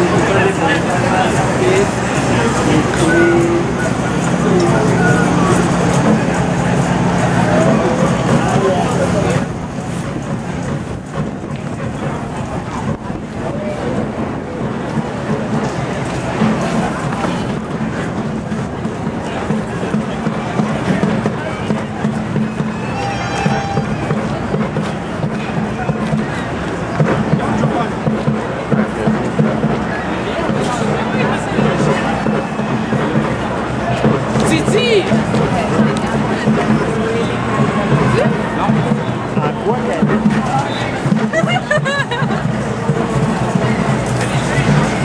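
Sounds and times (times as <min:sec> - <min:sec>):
crowd voices talking and calling: 0:00.0 - 0:45.0
music: 0:14.0 - 0:45.0
whistle or horn toot: 0:21.5 - 0:24.5.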